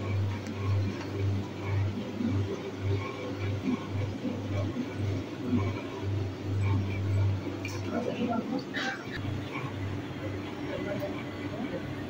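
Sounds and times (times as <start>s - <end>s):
pulsing low hum: 0.0s - 12.0s.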